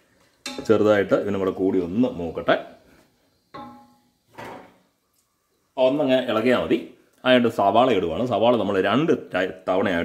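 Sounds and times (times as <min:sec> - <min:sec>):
person speaking: 0:00.5 - 0:02.8.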